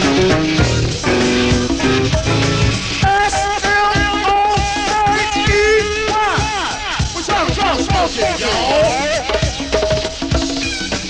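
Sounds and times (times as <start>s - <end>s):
band playing live: 0.0s - 11.0s
drums keeping a beat: 0.0s - 11.0s.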